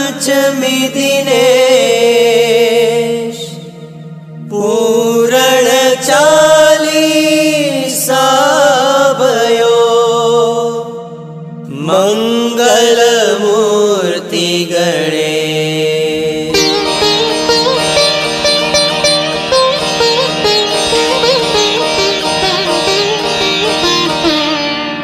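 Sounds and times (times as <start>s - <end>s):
person singing chant-like phrases: 0.0s - 3.8s, 4.5s - 18.0s
steady drone: 16.0s - 25.0s.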